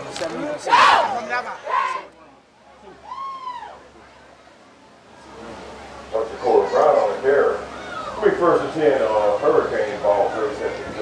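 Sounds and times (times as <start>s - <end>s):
man calling over public address: 6.1s - 11.0s.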